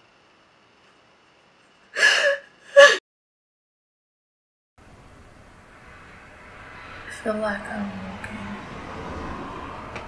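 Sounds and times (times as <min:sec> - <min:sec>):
woman sobbing gasps: 0:02.0 - 0:03.0.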